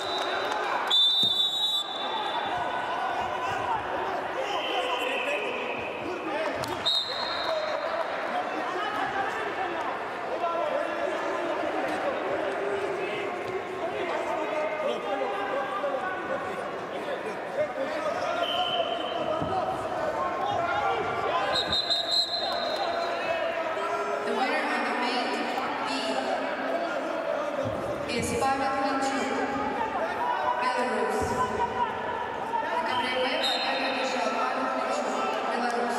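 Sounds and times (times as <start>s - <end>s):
high whistle blast: 0.0s - 2.5s
crowd chatter: 0.0s - 35.9s
echoing indistinct voices: 7.6s - 35.9s.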